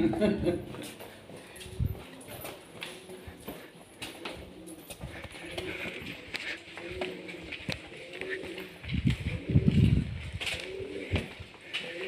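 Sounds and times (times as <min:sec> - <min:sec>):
bird cooing: 0:00.0 - 0:12.0
footsteps on stone: 0:00.1 - 0:12.0.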